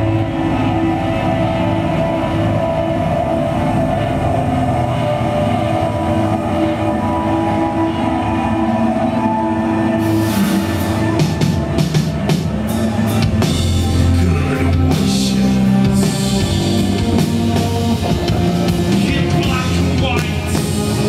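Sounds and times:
drums: 0:00.0 - 0:21.0
live band droning chord: 0:00.0 - 0:21.0.

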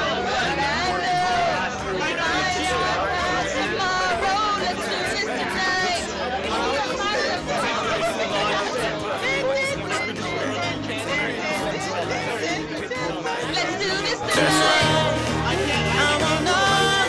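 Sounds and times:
background music: 0:00.0 - 0:17.0
crowd chatter: 0:00.0 - 0:17.0.

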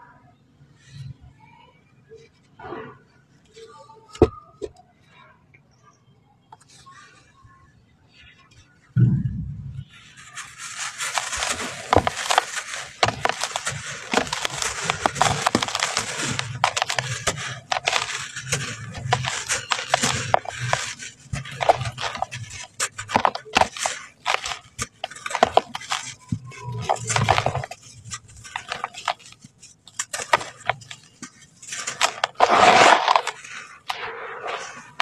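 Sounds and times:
sand block crunching and crackling: 0:09.8 - 0:35.0
sand block cracking: 0:10.1 - 0:35.0
sand grains falling: 0:10.1 - 0:35.0.

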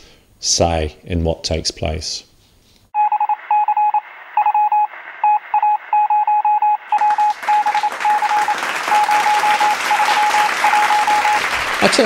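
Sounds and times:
morse code beeping: 0:03.0 - 0:11.5.

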